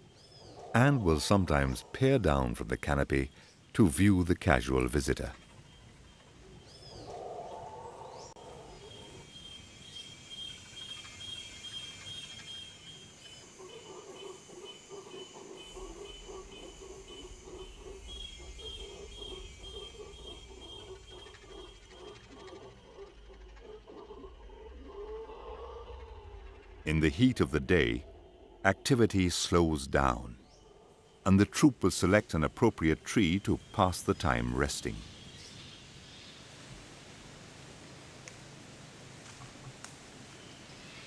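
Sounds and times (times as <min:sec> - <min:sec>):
bird chirps: 0:00.0 - 0:36.4
high insect trill: 0:08.5 - 0:36.2.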